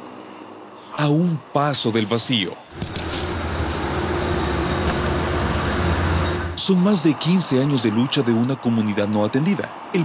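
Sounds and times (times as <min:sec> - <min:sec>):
faint steady hum: 0:00.0 - 0:10.0
highway traffic rumble: 0:00.0 - 0:10.0.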